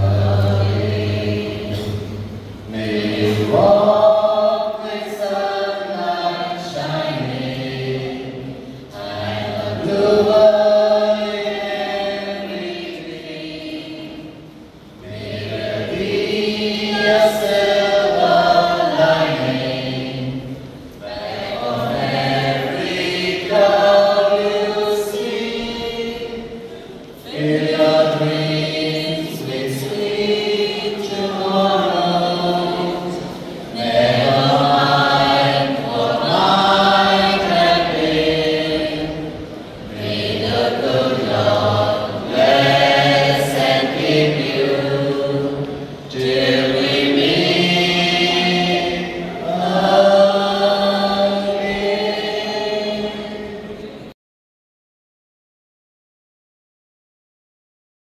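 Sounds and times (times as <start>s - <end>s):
mixed choir singing: 0.0s - 54.2s.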